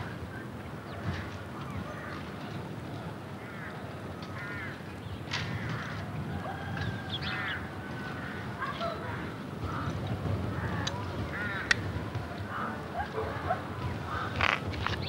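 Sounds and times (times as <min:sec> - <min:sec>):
birds calling: 0:03.4 - 0:15.0.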